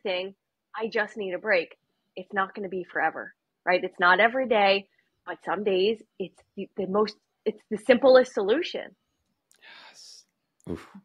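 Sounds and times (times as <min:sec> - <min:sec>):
person breathing: 0:09.6 - 0:10.8.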